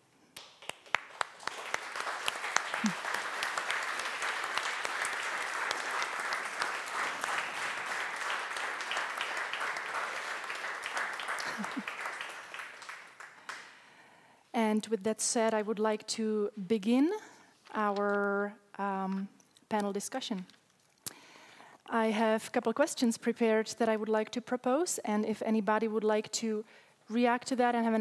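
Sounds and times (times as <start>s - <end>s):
audience applauding: 0.4s - 13.8s.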